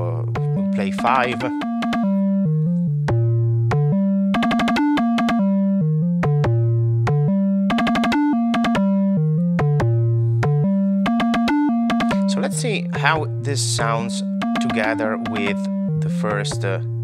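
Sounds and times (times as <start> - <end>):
synthesizer bass line: 0.0 - 17.0
ratcheted synth pings: 1.4 - 2.2, 4.4 - 5.4, 7.7 - 8.8.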